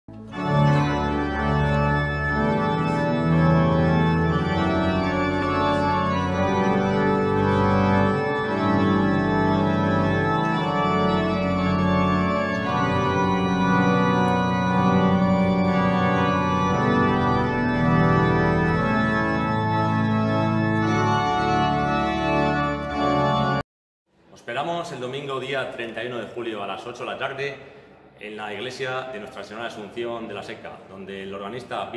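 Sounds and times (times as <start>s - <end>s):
organ playing slow chords: 0.1s - 23.6s.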